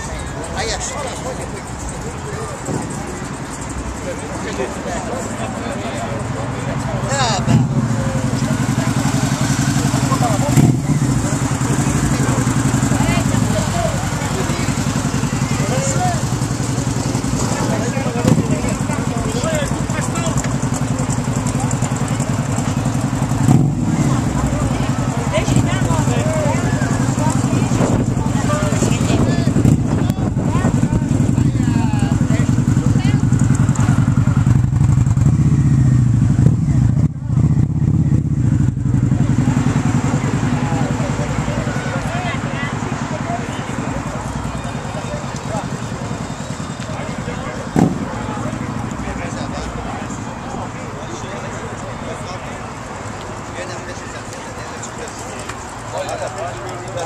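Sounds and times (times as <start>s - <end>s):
engine idling: 0.0s - 57.0s.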